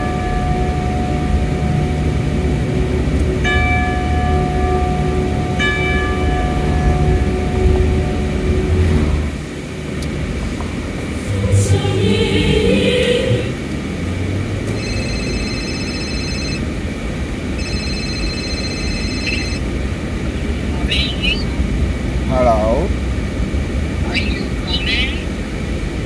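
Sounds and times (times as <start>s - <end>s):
car road and engine noise: 0.0s - 26.0s
phone ringing: 14.8s - 16.7s, 17.6s - 19.7s
person speaking: 22.3s - 22.9s, 24.0s - 25.4s.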